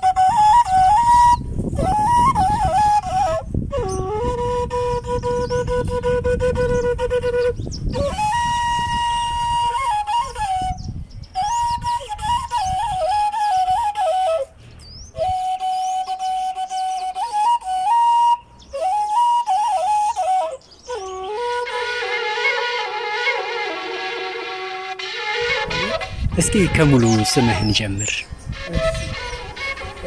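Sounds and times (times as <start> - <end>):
end-blown flute melody: 0.0 - 30.0.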